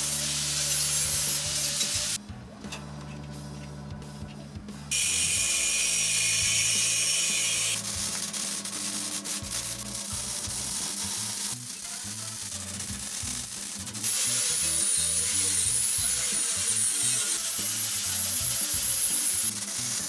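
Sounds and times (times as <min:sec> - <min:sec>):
angle grinder cutting steel: 0:00.0 - 0:02.2, 0:04.9 - 0:20.0
arc welding crackle: 0:00.0 - 0:02.2, 0:04.9 - 0:20.0.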